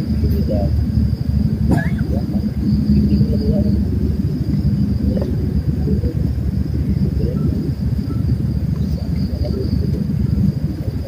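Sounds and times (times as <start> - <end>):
crickets chirping: 0.0 - 11.0
loud low rumble: 0.0 - 11.0.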